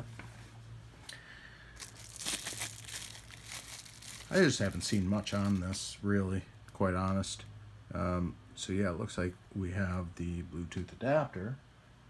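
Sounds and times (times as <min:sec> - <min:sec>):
bubble wrap crinkling: 0:01.7 - 0:05.9.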